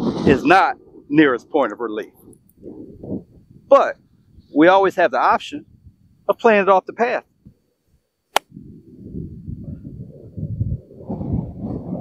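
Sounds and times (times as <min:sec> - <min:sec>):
wind rumble on microphone: 0:00.0 - 0:06.4, 0:08.4 - 0:12.0.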